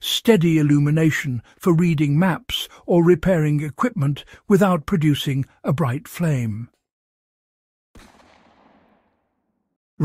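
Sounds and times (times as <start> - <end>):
sharp hit with echoing tail: 8.0 - 9.4.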